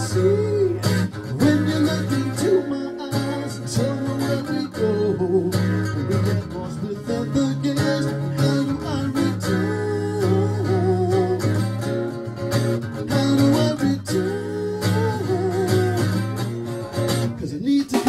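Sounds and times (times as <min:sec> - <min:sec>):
acoustic guitar chords: 0:00.0 - 0:18.0.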